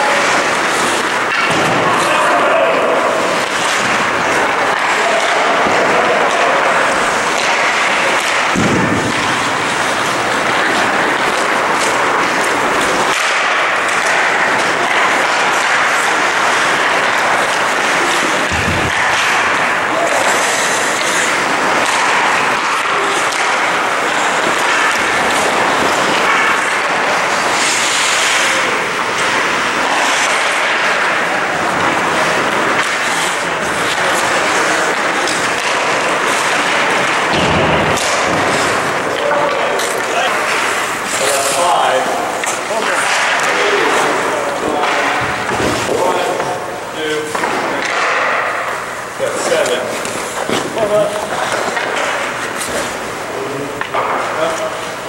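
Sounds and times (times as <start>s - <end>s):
skates scraping on ice: 0.0s - 54.9s
hockey sticks and puck knocking: 0.0s - 55.0s
players' voices: 0.0s - 55.0s
skate stop ice sprays: 0.0s - 55.0s.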